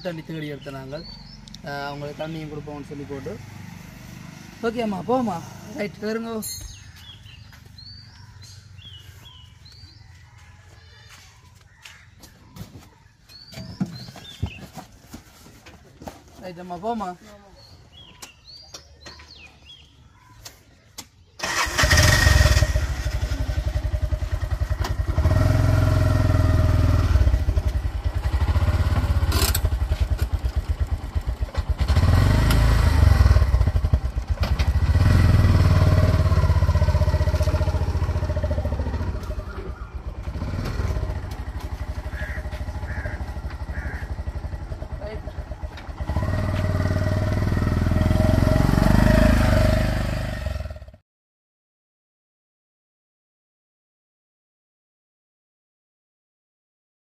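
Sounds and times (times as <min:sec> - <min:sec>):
auto-rickshaw engine running: 0:00.0 - 0:09.4, 0:21.4 - 0:51.0.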